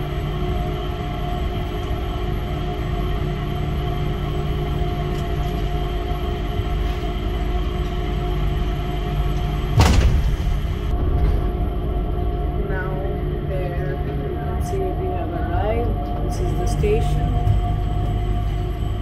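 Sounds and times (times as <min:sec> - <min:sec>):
train cabin hum and rumble: 0:00.0 - 0:19.0.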